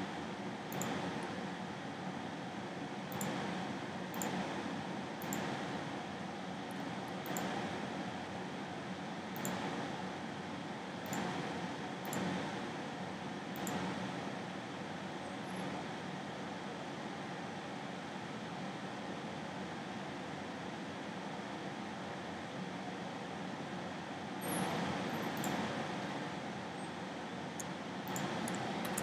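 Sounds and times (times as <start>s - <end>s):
room noise hiss: 0.0s - 29.0s.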